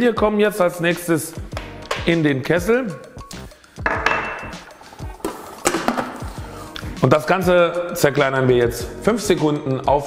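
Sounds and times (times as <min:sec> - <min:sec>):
background music: 0:00.0 - 0:10.0
glass bowl clinking: 0:03.8 - 0:05.8.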